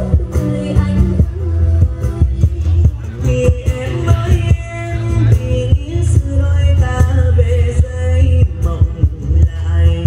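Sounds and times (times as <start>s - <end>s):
acoustic guitar: 0.0s - 10.0s
live instrumental music: 0.0s - 10.0s
throbbing bass line: 0.0s - 10.0s.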